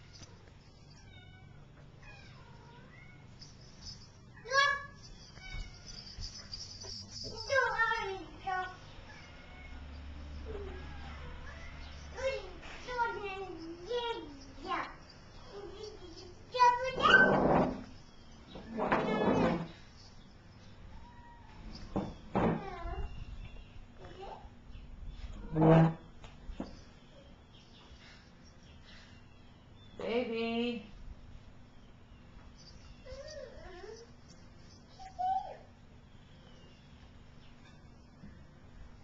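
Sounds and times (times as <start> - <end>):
cat meowing: 9.1 - 12.0.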